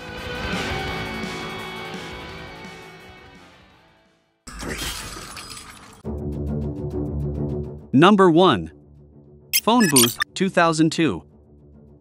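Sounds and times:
glass shattering: 0:04.9 - 0:06.0.

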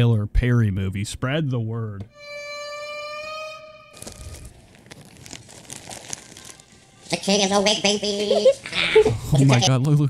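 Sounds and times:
crinkling and clicking handling noise: 0:04.0 - 0:06.7.

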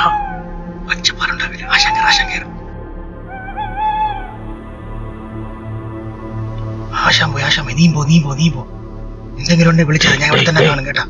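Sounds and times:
low background music drone: 0:00.0 - 0:11.0
high wavering cry: 0:03.3 - 0:04.5.

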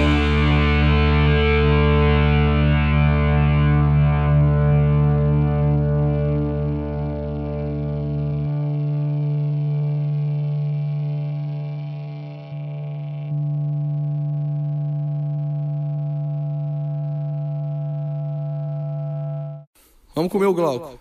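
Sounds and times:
distorted electric guitar note: 0:00.0 - 0:19.7.

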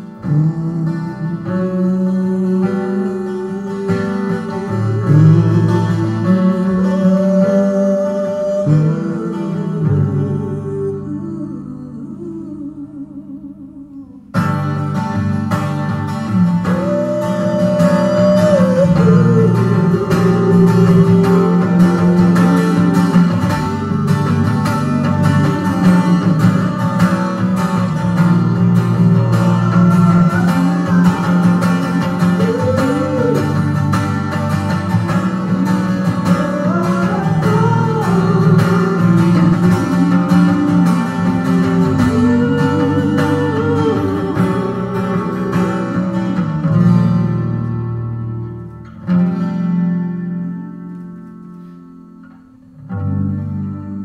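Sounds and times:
man singing: 0:00.0 - 0:14.8, 0:16.1 - 0:47.4
strummed acoustic guitar: 0:00.0 - 0:54.0.

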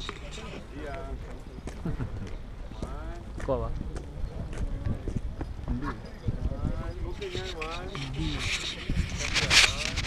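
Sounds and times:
people talking: 0:00.0 - 0:10.0
wind rumble on microphone: 0:03.7 - 0:10.0.

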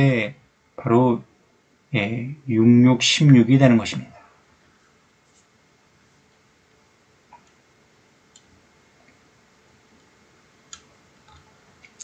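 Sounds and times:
computer mouse clicks: 0:08.3 - 0:09.2, 0:10.7 - 0:12.0.

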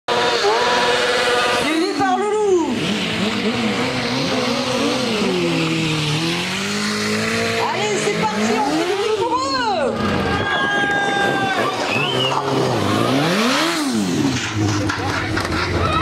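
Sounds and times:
motorcycle engines revving hard: 0:00.1 - 0:16.0.

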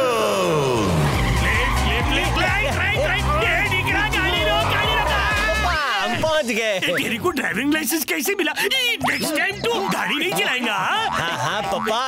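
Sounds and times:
music with pulsing bass: 0:00.8 - 0:05.8.

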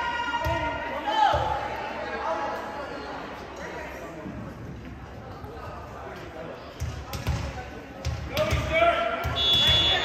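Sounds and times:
referee's whistle: 0:09.3 - 0:10.0.

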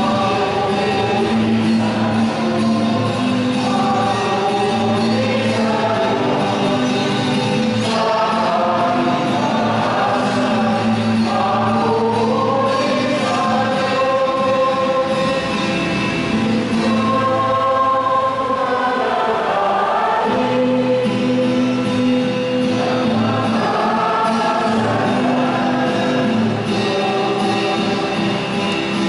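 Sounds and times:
choir singing a hymn: 0:00.0 - 0:29.0.

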